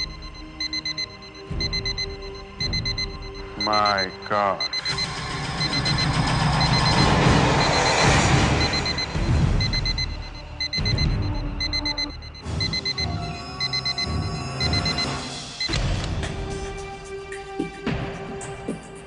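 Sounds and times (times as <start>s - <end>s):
high electronic beep: 0.0s - 15.7s.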